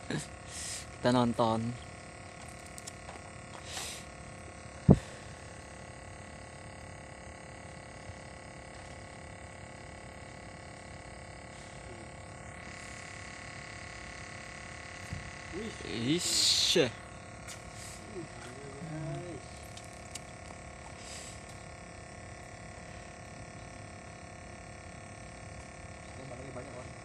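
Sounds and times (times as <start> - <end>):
steady outdoor hum: 0.0 - 27.0.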